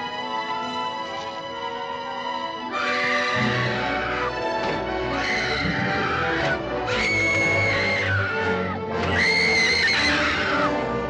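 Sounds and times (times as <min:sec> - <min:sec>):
dramatic film music: 0:00.0 - 0:11.0.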